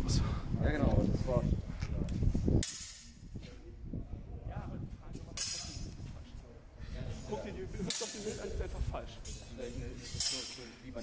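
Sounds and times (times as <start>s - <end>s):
people talking: 3.3s - 11.0s.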